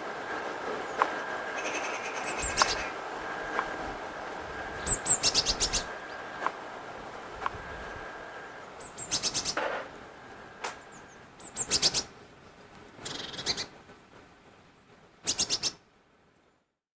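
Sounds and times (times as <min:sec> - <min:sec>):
magpies chattering: 0:00.9 - 0:03.9, 0:04.5 - 0:06.6, 0:07.4 - 0:09.8, 0:10.7 - 0:12.1, 0:15.3 - 0:15.8.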